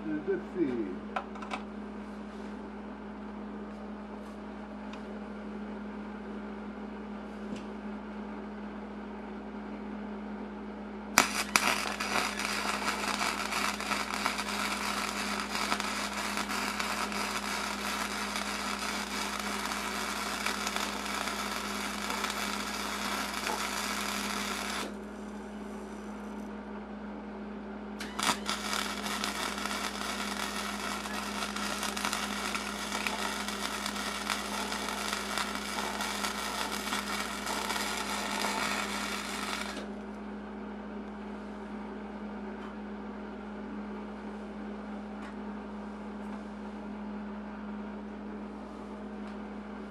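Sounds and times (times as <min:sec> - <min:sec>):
steady low hum: 0:00.0 - 0:49.9
arc welding crackling: 0:11.2 - 0:25.1, 0:28.0 - 0:39.9.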